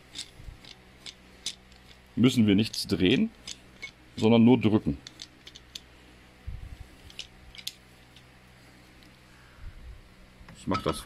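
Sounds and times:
hand tools clicking: 0.0s - 4.3s, 5.0s - 5.9s, 7.1s - 8.2s.

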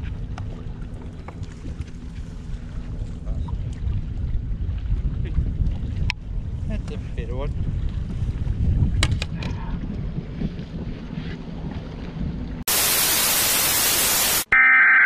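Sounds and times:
wind buffeting microphone: 0.0s - 12.6s.

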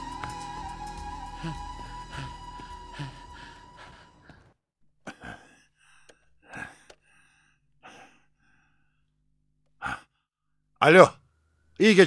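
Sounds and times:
background music: 0.0s - 4.4s
man breathing: 1.0s - 9.2s.

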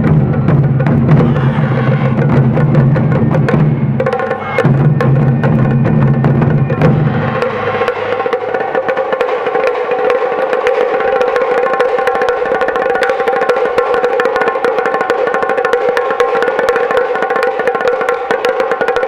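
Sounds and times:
deep big drum strokes: 0.0s - 10.7s
fast high-pitched drumming: 0.0s - 19.0s.

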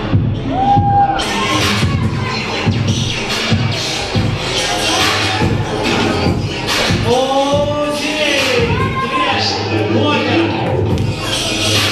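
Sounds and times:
crowd cheering and shouting: 0.0s - 11.9s
hip hop music over loudspeaker: 0.0s - 11.9s.

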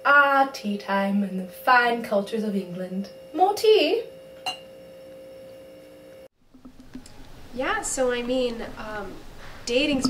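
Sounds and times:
high-pitched hum: 1.3s - 10.0s.

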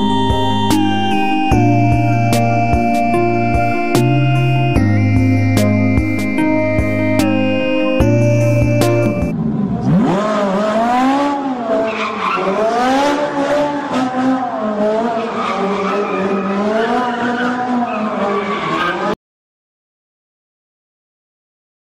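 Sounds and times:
music: 0.0s - 9.3s
car engine revving: 0.0s - 19.2s.

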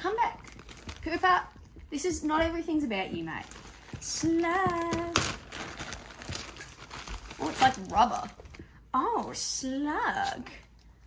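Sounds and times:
plastic bag crinkling: 0.3s - 1.6s, 3.3s - 8.6s.

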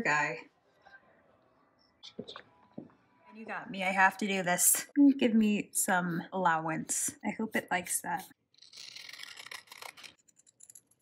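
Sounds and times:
scissors cutting paper: 7.9s - 11.0s.

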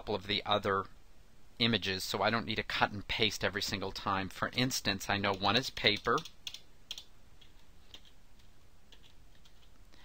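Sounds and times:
keyboard keystrokes: 5.3s - 9.7s.

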